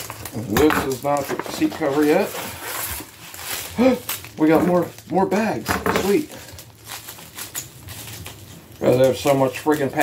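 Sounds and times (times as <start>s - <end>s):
envelope rustling: 0.0s - 10.0s.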